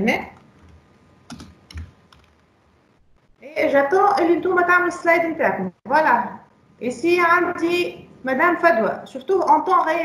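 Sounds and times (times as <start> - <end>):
computer keyboard typing: 0.3 - 2.4.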